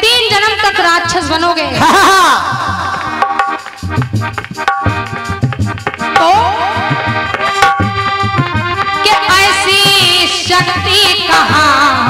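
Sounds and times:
tabla strokes: 2.4 - 11.7
harmonium held tones: 2.6 - 12.0
woman singing devotional song: 8.9 - 12.0.

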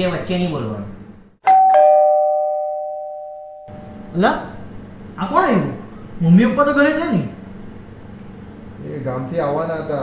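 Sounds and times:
two-note ding-dong chime: 1.4 - 4.0.

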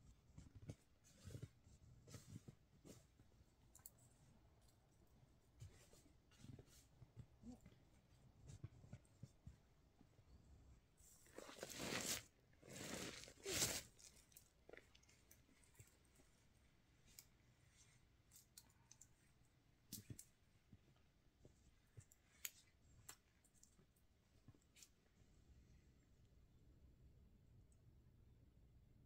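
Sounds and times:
snowsuit crunching on snow: 11.5 - 13.9.

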